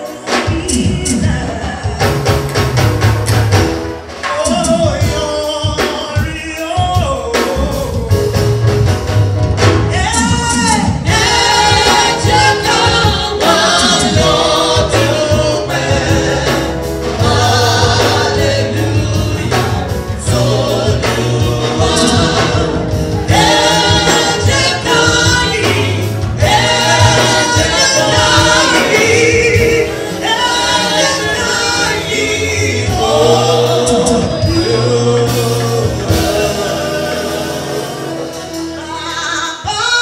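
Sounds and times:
band playing: 0:00.0 - 0:40.0
male backing singers: 0:10.1 - 0:39.2
woman singing lead: 0:38.2 - 0:40.0.

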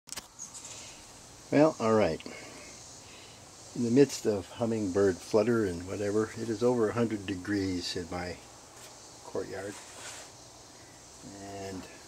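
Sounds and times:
insect chirring: 0:00.1 - 0:12.0
man speaking: 0:01.5 - 0:02.5, 0:03.8 - 0:08.4, 0:09.3 - 0:09.8, 0:11.2 - 0:12.0.

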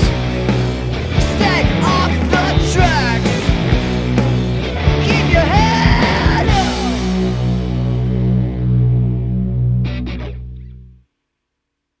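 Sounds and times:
distorted guitar and bass chord: 0:00.0 - 0:11.1.

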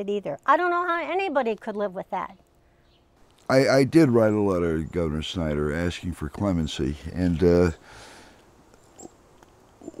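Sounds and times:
man exhaling through nose: 0:07.8 - 0:08.4
short breath in: 0:07.8 - 0:08.4.

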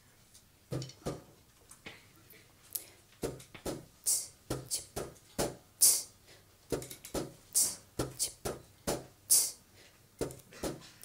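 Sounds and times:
soft percussion knocks and clicks: 0:03.2 - 0:03.9, 0:04.5 - 0:05.6, 0:06.7 - 0:09.1, 0:10.2 - 0:10.9
sharp hiss-like accent: 0:04.0 - 0:05.0, 0:05.8 - 0:06.2, 0:07.5 - 0:08.4, 0:09.3 - 0:09.6.

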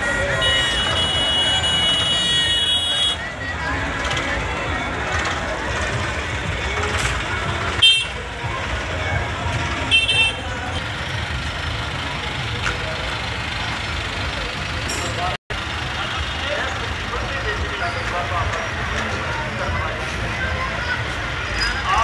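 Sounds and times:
vehicle horn toots: 0:00.0 - 0:03.4, 0:07.8 - 0:08.2, 0:09.8 - 0:10.8
people chattering: 0:00.0 - 0:22.0
tractor engines running: 0:00.0 - 0:22.0.

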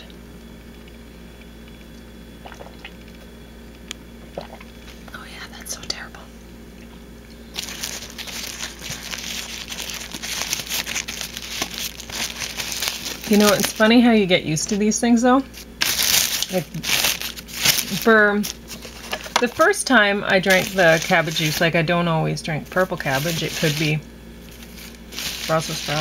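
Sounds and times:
crinkling and crackling: 0:07.3 - 0:14.1, 0:15.5 - 0:21.9, 0:22.6 - 0:26.0.

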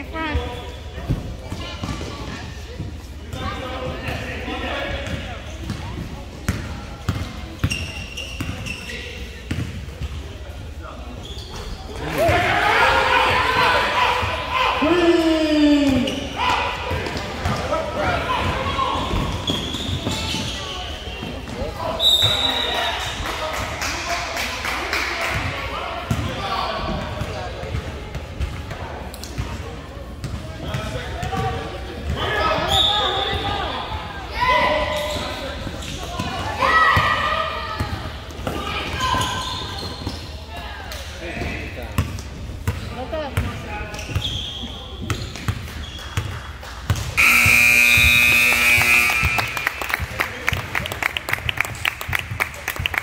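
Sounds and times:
people shouting: 0:12.0 - 0:16.9
scoreboard buzzer: 0:47.2 - 0:49.8.

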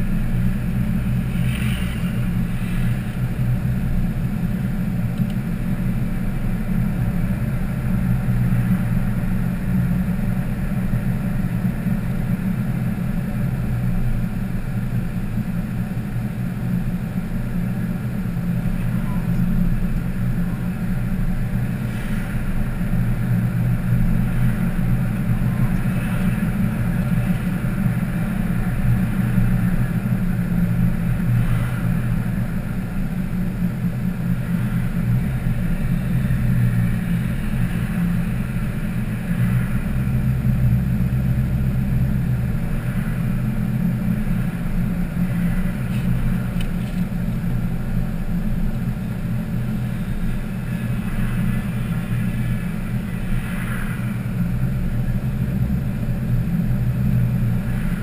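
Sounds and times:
car engine and road noise: 0:00.0 - 0:58.0.

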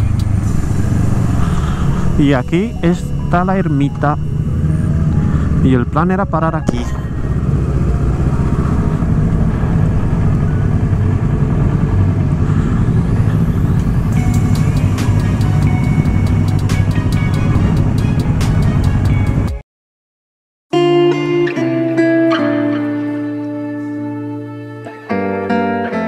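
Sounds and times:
background music: 0:00.0 - 0:19.6, 0:20.8 - 0:26.0
motorcycle engine running: 0:00.0 - 0:19.6.

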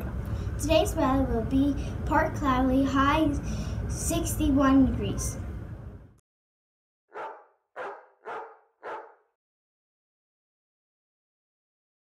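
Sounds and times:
dog barking: 0:07.1 - 0:09.3.

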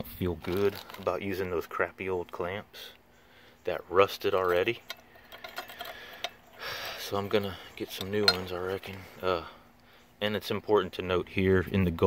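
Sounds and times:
metallic clicks of hose clamp: 0:04.4 - 0:09.0.

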